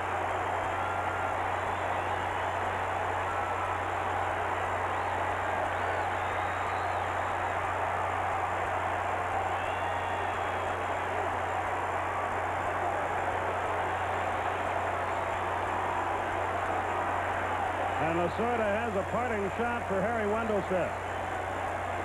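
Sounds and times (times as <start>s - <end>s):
faint high whistles: 4.9s - 7.5s, 9.6s - 10.8s.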